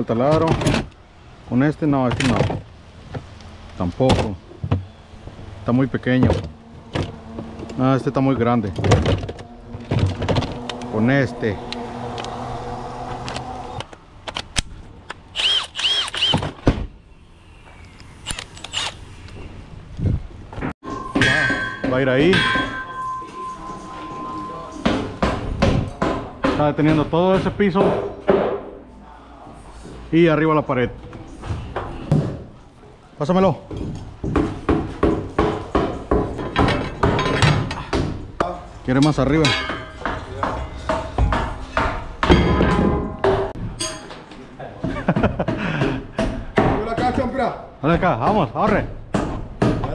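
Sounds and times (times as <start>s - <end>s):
tools clicking and knocking: 8.7s - 10.9s, 33.7s - 38.1s
impact driver motor buzzing: 15.4s - 16.5s
hammer striking: 20.8s - 28.8s, 33.7s - 44.1s.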